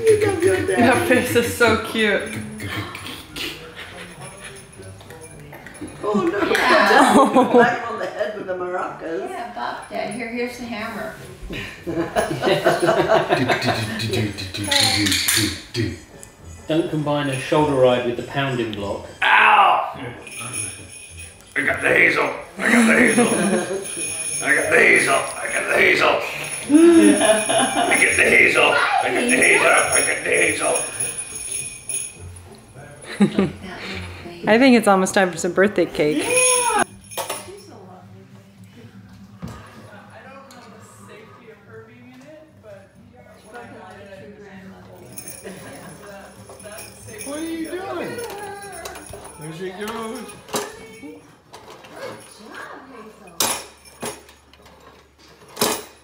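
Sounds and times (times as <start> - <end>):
people talking and laughing: 0.0 - 53.4
background chatter: 0.0 - 55.7.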